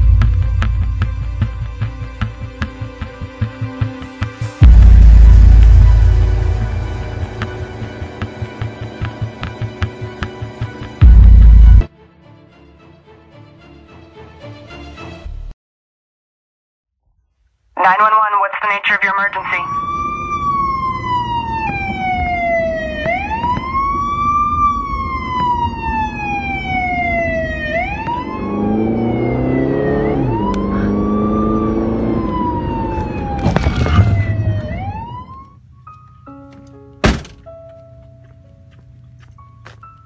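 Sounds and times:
lower second siren: 4.6s - 11.8s, 19.4s - 35.6s
siren wailing: 19.2s - 35.6s.

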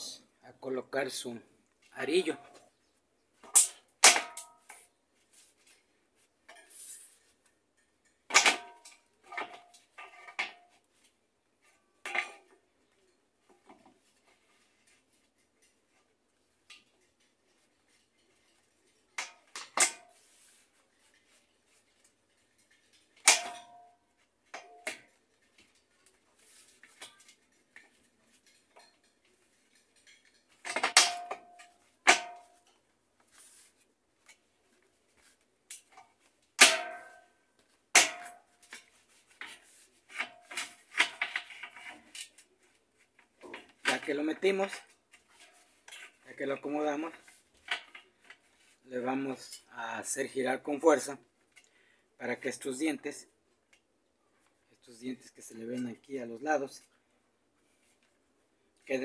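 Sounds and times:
handling rustle: 8.9s - 30.7s.

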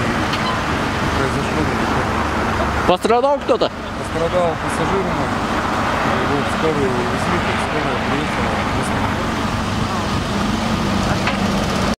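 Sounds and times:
heavy vehicle engine drone: 0.0s - 11.9s
road traffic noise: 0.0s - 11.9s.

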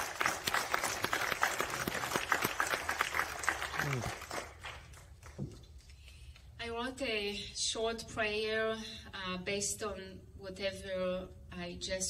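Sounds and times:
congregation applauding: 0.0s - 5.4s.

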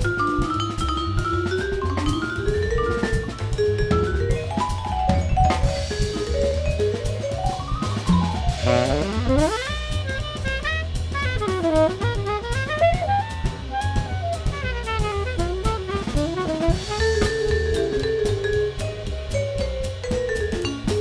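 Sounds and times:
drum kit: 0.0s - 21.0s
jazz tenor saxophone solo: 8.2s - 18.6s.

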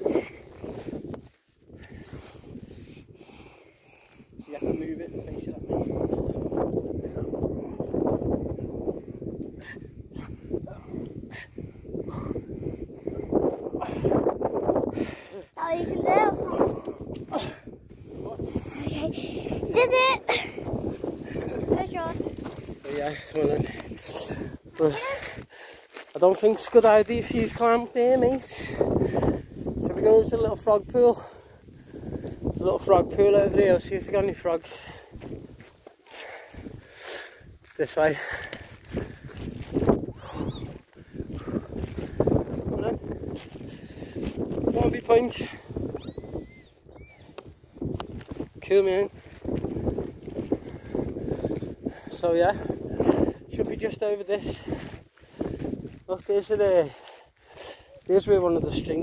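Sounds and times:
footsteps in soft sand: 37.6s - 45.5s, 47.9s - 51.8s, 54.4s - 59.0s.

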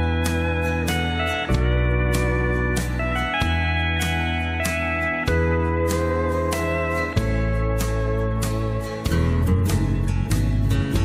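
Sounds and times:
acoustic guitar strumming: 0.0s - 11.0s
sliding lead guitar notes: 0.0s - 11.0s.

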